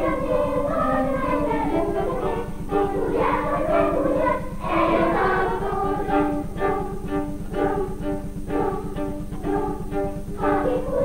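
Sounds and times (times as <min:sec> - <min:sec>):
children's choir singing: 0:00.0 - 0:11.0
low steady hum: 0:00.0 - 0:11.0
violin: 0:00.0 - 0:11.0.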